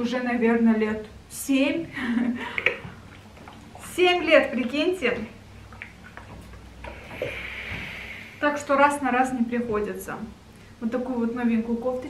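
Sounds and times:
steam iron hissing: 6.9 - 8.4.

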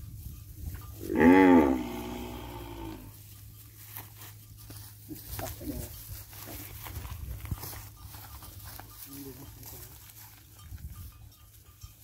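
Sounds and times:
steps rustling on straw: 0.0 - 12.0.

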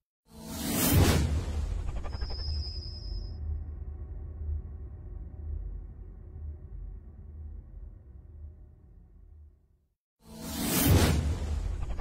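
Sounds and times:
whoosh: 10.3 - 12.0.

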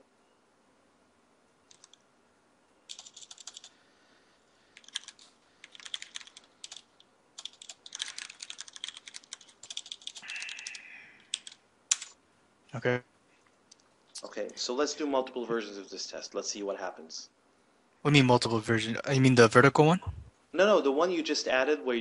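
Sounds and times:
computer keyboard typing: 1.7 - 2.0, 2.9 - 3.8, 4.7 - 12.2.

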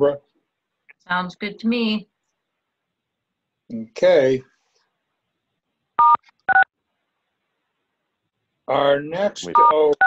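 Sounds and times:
touch-tone keypad beeps: 6.0 - 6.7, 9.6 - 9.8.

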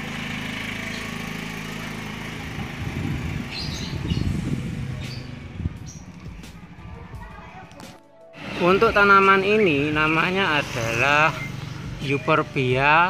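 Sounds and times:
motorcycle engine running: 0.0 - 13.0.

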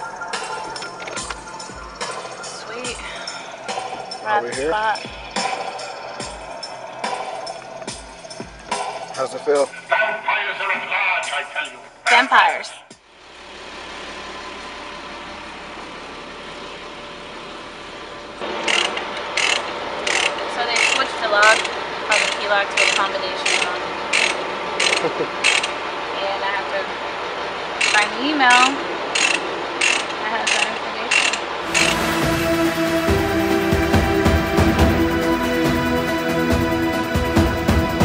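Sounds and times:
music: 0.0 - 13.0, 31.6 - 38.0
truck running: 0.0 - 38.0
mechanical rasp: 18.6 - 25.7, 29.2 - 31.9.

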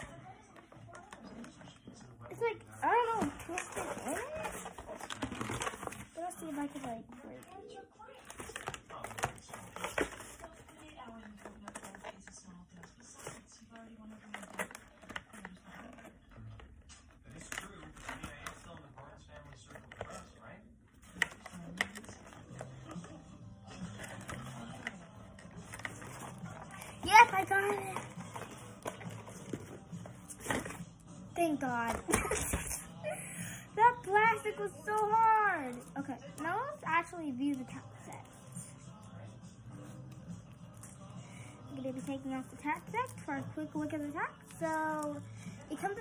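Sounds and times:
cardboard and plastic packaging rustling: 0.0 - 32.9.

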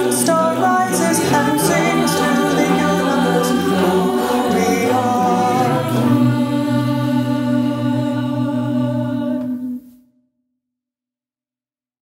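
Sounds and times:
a cappella choir singing: 0.0 - 10.1.

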